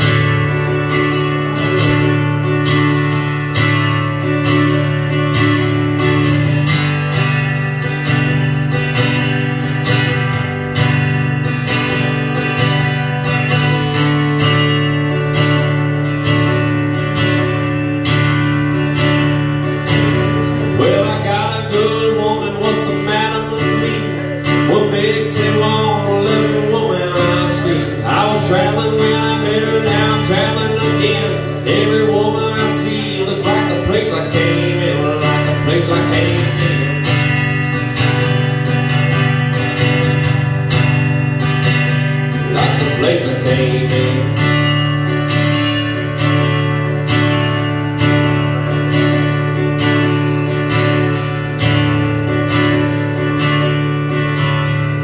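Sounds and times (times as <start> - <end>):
acoustic guitar strumming: 0.0 - 55.0
person singing: 20.0 - 37.1, 42.3 - 44.6.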